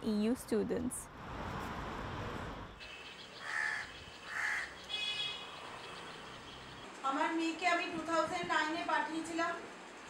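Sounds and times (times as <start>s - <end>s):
faint outdoor background: 0.0s - 10.0s
higher bird call: 2.8s - 6.1s
crow cawing: 3.4s - 5.4s.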